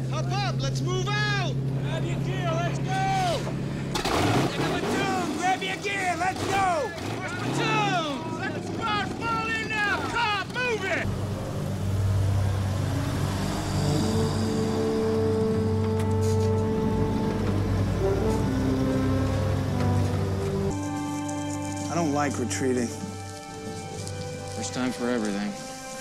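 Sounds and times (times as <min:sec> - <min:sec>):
truck engines droning: 0:00.0 - 0:26.0
music score: 0:11.1 - 0:26.0.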